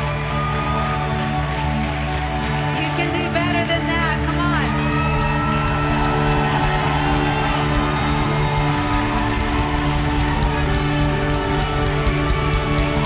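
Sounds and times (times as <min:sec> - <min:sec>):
worship band playing slow chords: 0:04.7 - 0:13.0.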